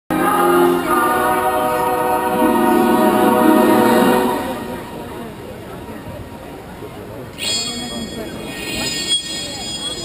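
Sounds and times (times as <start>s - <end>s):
choir singing sustained chords: 0.1s - 5.7s.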